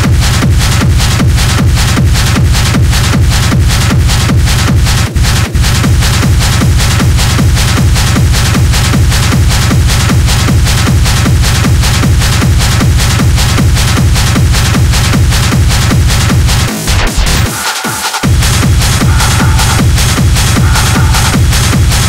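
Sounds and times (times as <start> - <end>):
electronic dance music: 0.0 - 22.0
heavy bass line: 0.0 - 22.0
steady kick drum: 0.0 - 22.0.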